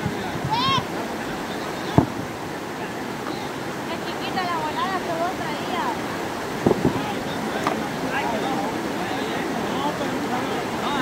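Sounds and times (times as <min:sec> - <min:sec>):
faint voices calling: 0:00.0 - 0:11.0
river rushing over rocks: 0:00.0 - 0:11.0
sharp knocks: 0:06.6 - 0:07.0.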